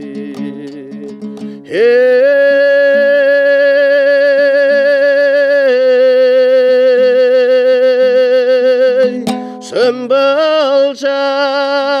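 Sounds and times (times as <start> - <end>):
softly plucked lute: 0.0 - 5.1, 8.9 - 10.3
man singing a long note: 1.7 - 12.0.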